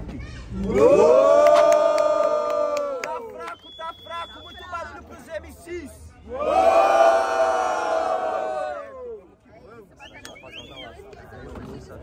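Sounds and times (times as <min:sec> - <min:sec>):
crowd shouting together: 0:06.3 - 0:09.1.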